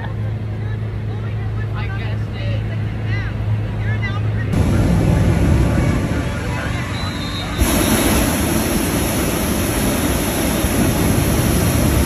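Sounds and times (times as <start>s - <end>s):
inflator fan engine humming: 0.0s - 12.0s
faint crowd voices: 0.3s - 7.6s.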